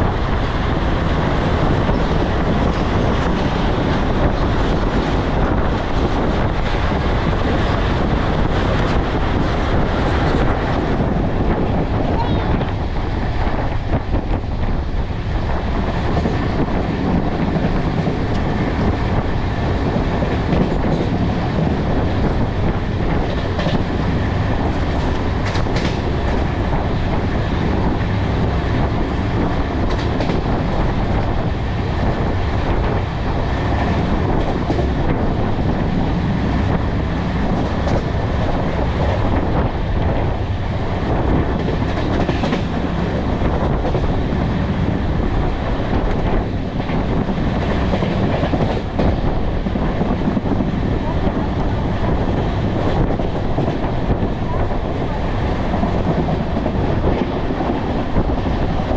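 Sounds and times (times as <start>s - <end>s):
train wheels rumbling on rails: 0.0s - 58.9s.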